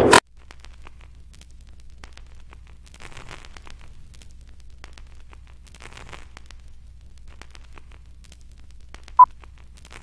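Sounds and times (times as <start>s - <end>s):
film crackles and pops: 0.0s - 10.0s
steady low hum: 0.0s - 10.0s.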